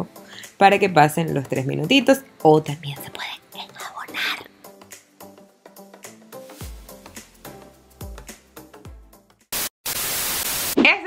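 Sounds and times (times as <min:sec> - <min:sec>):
background music: 0:00.0 - 0:09.6
woman speaking: 0:00.6 - 0:04.4, 0:10.8 - 0:11.0
loud static hiss: 0:09.5 - 0:10.8.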